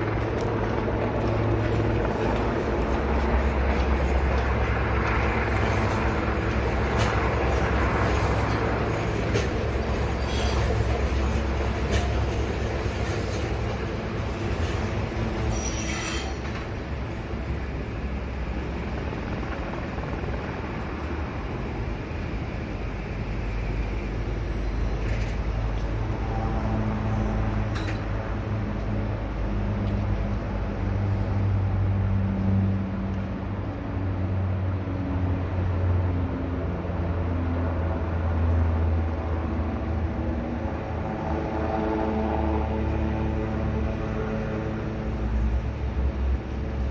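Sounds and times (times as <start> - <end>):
train rumbling on rails: 0.0 - 46.9.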